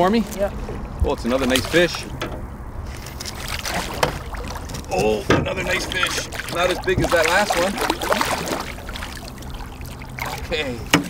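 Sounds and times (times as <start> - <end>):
fish thrashing and splashing: 2.9 - 11.0.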